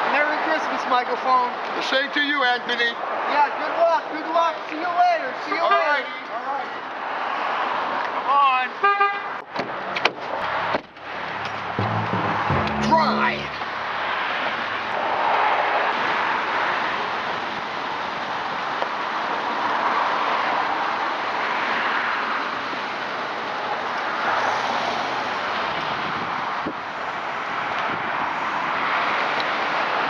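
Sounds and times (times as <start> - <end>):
pickup truck driving off: 10.3 - 15.2.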